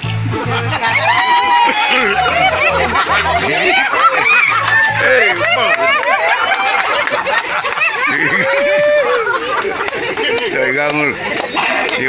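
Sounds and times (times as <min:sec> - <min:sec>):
dance music with low bass: 0:00.0 - 0:05.7
people laughing and chattering: 0:00.0 - 0:12.0.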